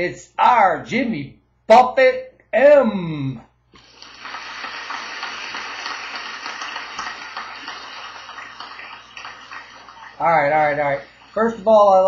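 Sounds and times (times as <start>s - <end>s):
crowd applause: 3.9s - 11.1s.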